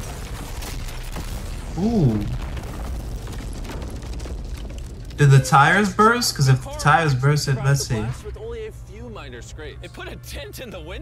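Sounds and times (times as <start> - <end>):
explosion rumble: 0.0 - 5.2
man saying ooh: 1.8 - 2.4.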